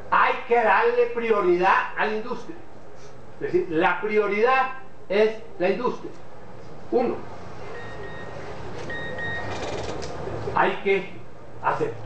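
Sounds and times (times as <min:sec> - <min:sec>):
steady low hum: 0:00.0 - 0:12.0
high electronic beep: 0:07.7 - 0:09.6.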